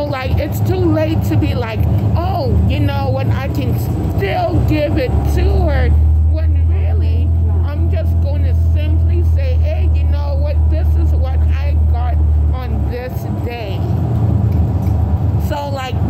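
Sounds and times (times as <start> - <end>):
voices talking: 0.0 - 14.0
bus engine droning: 0.0 - 16.0.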